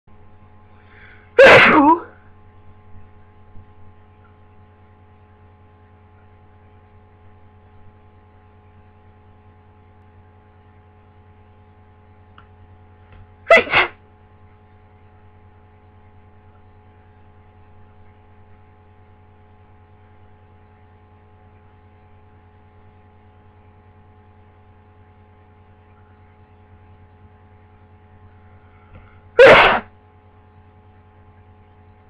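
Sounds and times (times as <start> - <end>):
steady low hum: 0.1 - 32.0
person sneezing: 1.0 - 2.2, 13.5 - 14.0, 29.0 - 29.9.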